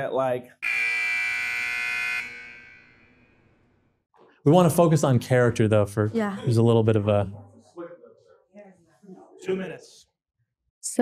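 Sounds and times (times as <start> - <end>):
electronic timer buzzer: 0.6 - 3.6.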